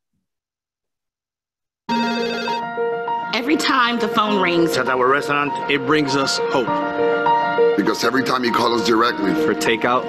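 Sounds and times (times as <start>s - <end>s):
telephone ringtone: 1.9s - 2.9s
music: 1.9s - 10.0s.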